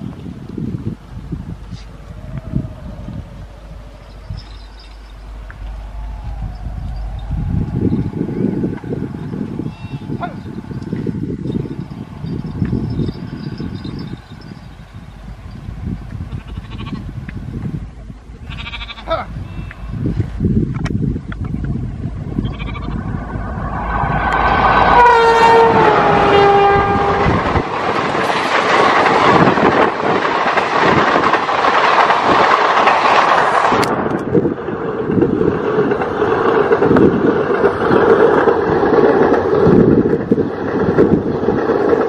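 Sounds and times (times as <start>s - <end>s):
electric locomotive passing: 0.0s - 42.0s
train horn: 24.0s - 27.7s.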